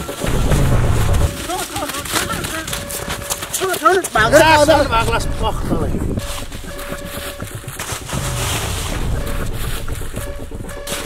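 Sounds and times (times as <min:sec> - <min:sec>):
dry leaves rustling and crunching: 0:01.3 - 0:04.1.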